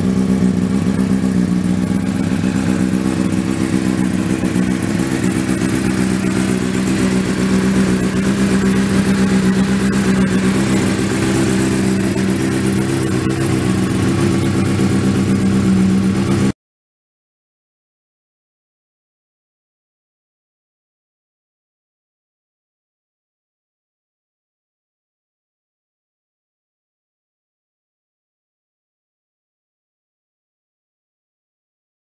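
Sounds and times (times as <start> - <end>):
motorcycle engine running steadily: 0.0 - 16.6.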